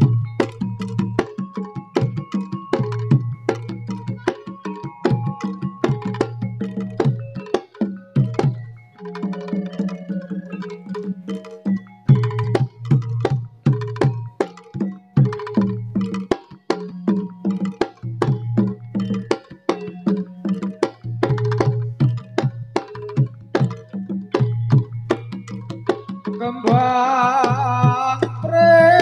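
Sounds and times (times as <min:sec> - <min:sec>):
drum and wood percussion: 0:00.0 - 0:29.0
ringing low tones: 0:00.0 - 0:29.0.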